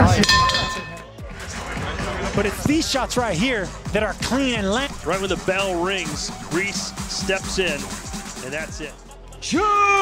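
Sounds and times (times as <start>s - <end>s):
boxing ring bell: 0.1s - 1.0s.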